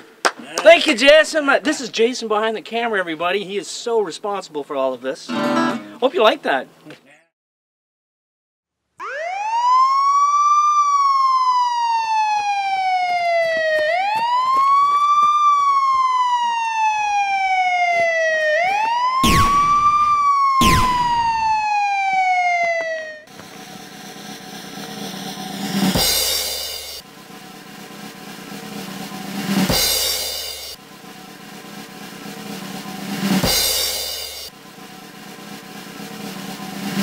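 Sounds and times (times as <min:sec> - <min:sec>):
siren wailing: 0:09.0 - 0:23.3
drum music: 0:15.7 - 0:21.7, 0:23.2 - 0:37.0
sharp bangs: 0:19.2 - 0:21.8.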